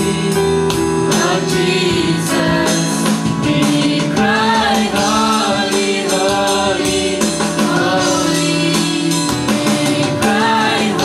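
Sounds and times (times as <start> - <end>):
choir singing gospel song: 0.0 - 11.0
instrumental accompaniment: 0.0 - 11.0.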